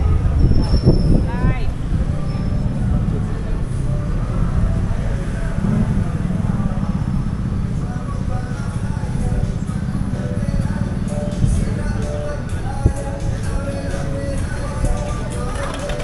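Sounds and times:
people talking: 0.0s - 11.4s, 14.6s - 16.0s
road traffic rumble: 0.0s - 16.0s.

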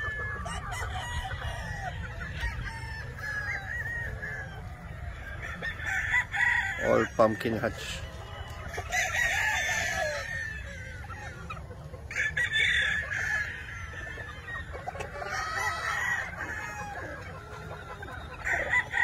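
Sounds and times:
chickens clucking: 0.0s - 19.0s
roosters crowing: 0.0s - 19.0s.

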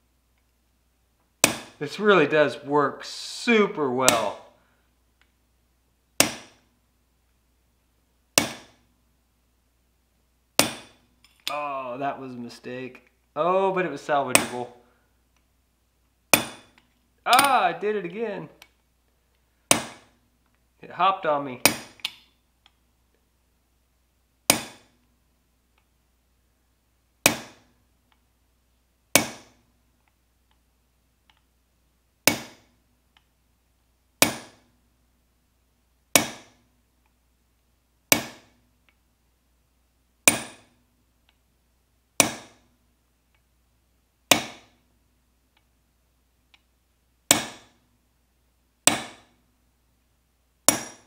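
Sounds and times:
hammer striking metal punch: 1.4s - 1.8s, 4.1s - 4.4s, 6.2s - 6.6s, 8.4s - 8.8s, 10.6s - 11.0s, 14.3s - 14.6s, 16.3s - 17.6s, 19.7s - 20.2s, 21.6s - 22.1s, 24.5s - 25.0s, 27.2s - 27.7s, 29.1s - 29.6s, 32.2s - 32.7s, 34.2s - 34.6s, 36.1s - 36.6s, 38.1s - 38.5s, 40.2s - 40.7s, 42.2s - 42.7s, 44.3s - 44.7s, 47.3s - 47.8s, 48.9s - 49.3s, 50.7s - 51.0s.

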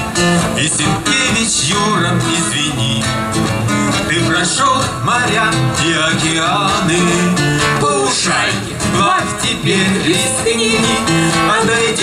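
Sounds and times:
amplified acoustic guitar: 0.0s - 12.0s.

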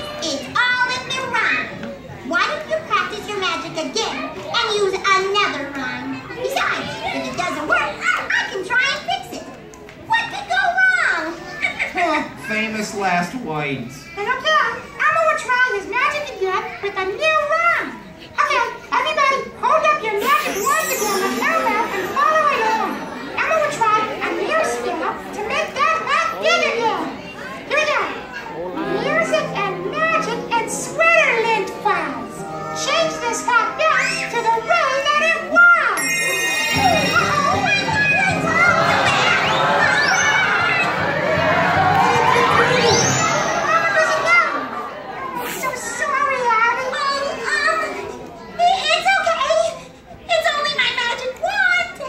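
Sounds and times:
children calling out together: 17.9s - 30.9s, 31.7s - 50.0s.

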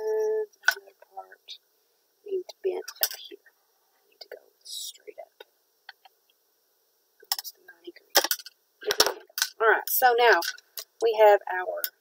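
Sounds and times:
person muttering and whispering: 8.8s - 9.2s.

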